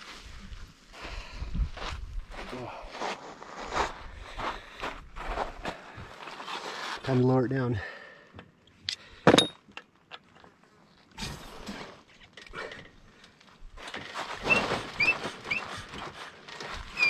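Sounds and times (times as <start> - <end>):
jack scraping and creaking: 13.8 - 17.0.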